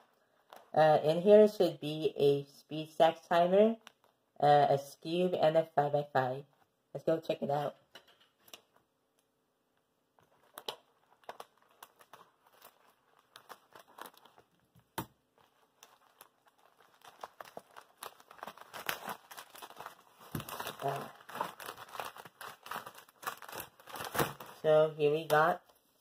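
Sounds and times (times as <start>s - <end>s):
plastic mailer bag crinkling: 10.2s - 25.7s.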